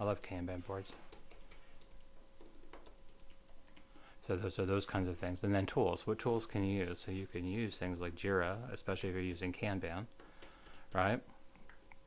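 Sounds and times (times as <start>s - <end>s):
computer keyboard typing: 0.2s - 4.1s, 6.5s - 8.3s, 10.1s - 12.0s.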